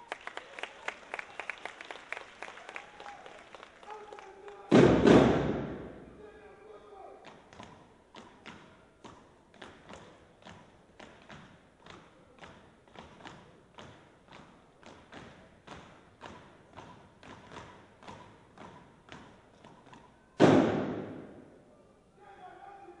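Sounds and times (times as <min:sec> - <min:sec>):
steady sharp thuds: 0:20.4 - 0:21.5.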